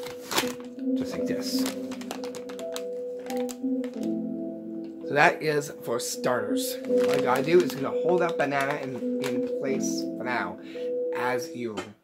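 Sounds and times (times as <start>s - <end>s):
paper bag crinkling: 0.0s - 4.2s, 6.7s - 9.8s
background music: 0.0s - 12.0s.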